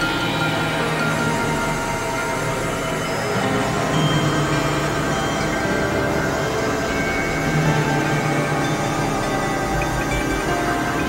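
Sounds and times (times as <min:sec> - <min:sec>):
low hum: 0:00.0 - 0:11.0
synthesizer drone music: 0:00.0 - 0:11.0.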